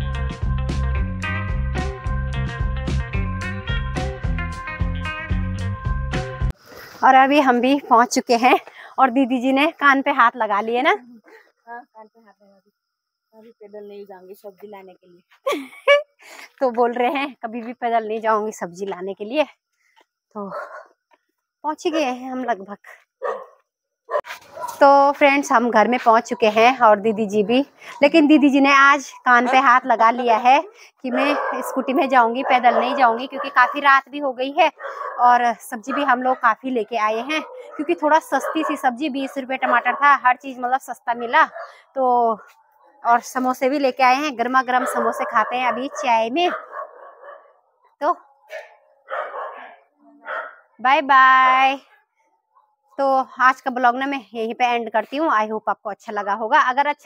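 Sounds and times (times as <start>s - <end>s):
woman speaking: 7.0s - 12.6s, 13.4s - 19.5s, 20.4s - 20.7s, 21.6s - 23.0s, 24.8s - 46.6s, 50.8s - 51.8s, 53.0s - 57.0s
dog barking: 20.5s - 21.0s, 23.2s - 24.8s, 29.1s - 34.0s, 34.7s - 36.5s, 37.2s - 40.2s, 41.4s - 41.8s, 44.6s - 50.8s.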